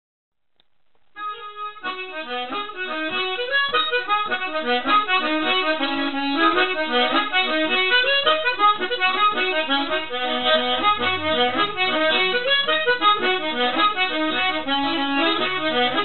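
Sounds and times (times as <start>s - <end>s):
lively instrumental music: 1.2s - 16.0s.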